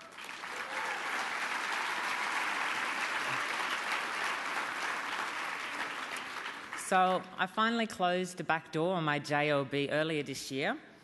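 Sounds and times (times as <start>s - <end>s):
large audience applauding: 0.0s - 7.0s.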